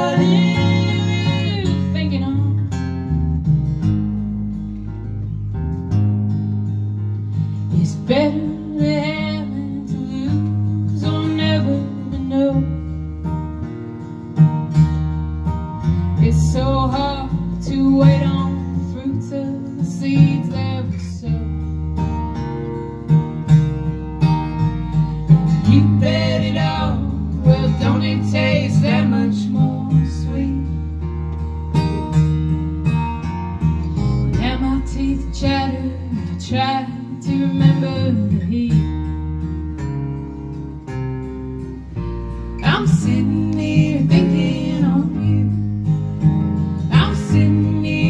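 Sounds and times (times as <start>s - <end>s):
person singing: 0.0s - 2.7s, 42.6s - 45.6s
acoustic guitar strumming: 0.0s - 48.0s
electric bass: 0.0s - 48.0s.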